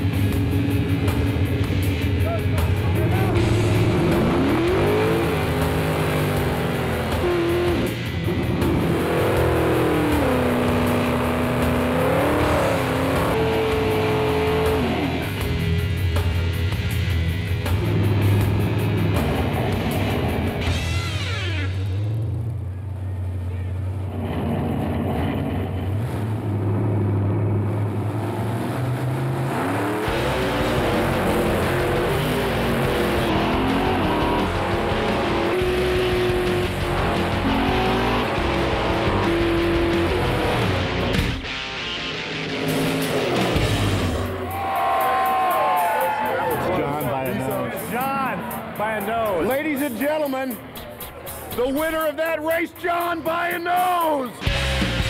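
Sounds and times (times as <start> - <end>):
background music: 0.0 - 22.4, 30.0 - 55.0
drag car engines revving: 0.0 - 55.0.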